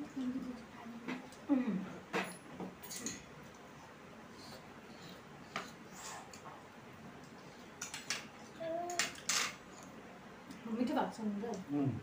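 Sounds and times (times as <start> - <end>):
forks clinking on plates: 2.2 - 3.2.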